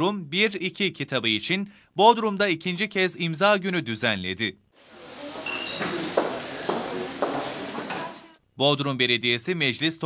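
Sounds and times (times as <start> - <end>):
indistinct audience voices: 4.8 - 8.3
audience rustling: 4.8 - 8.4.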